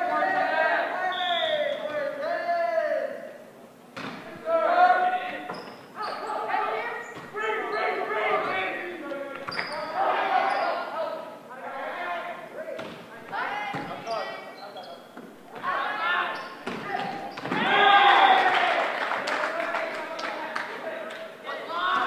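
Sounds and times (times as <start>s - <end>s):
players calling out: 4.2s - 22.0s
sneakers squeaking on hardwood: 5.4s - 8.7s, 9.3s - 10.9s, 12.8s - 17.8s.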